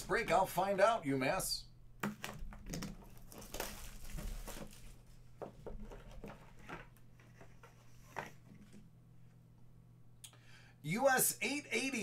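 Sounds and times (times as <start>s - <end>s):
shrink-wrap crinkling and tearing: 2.2s - 5.1s.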